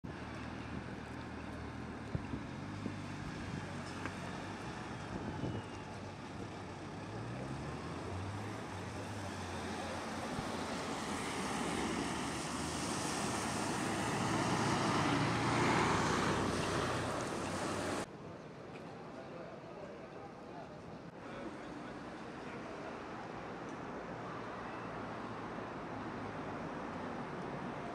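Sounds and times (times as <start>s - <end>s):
vehicles driving past: 0.1s - 18.1s.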